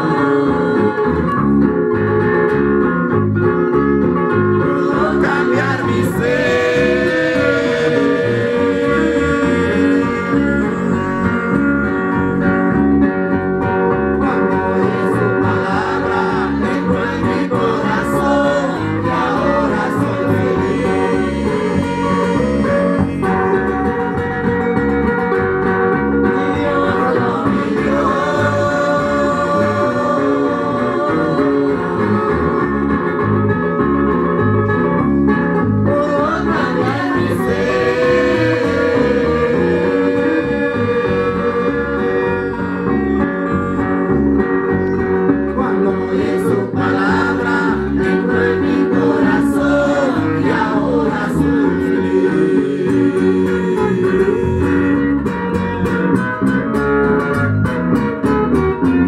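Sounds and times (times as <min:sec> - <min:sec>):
congregation singing a hymn: 0:00.0 - 0:01.6, 0:04.6 - 0:12.8, 0:14.2 - 0:23.8, 0:26.2 - 0:33.5, 0:35.9 - 0:44.3, 0:45.5 - 0:55.2
bass guitar: 0:00.0 - 0:59.0
guitar: 0:00.0 - 0:59.0.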